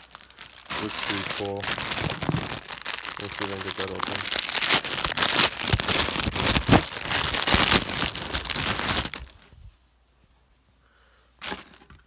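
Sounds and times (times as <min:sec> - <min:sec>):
plastic bag crinkling and tearing: 0:00.0 - 0:09.4.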